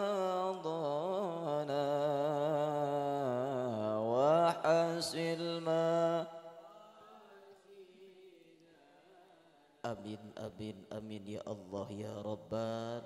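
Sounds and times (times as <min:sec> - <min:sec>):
man chanting into a microphone: 0:00.0 - 0:13.0.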